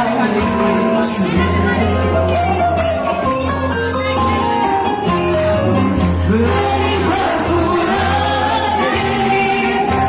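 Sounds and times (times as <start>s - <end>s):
folk dance music with singing: 0.0s - 10.0s.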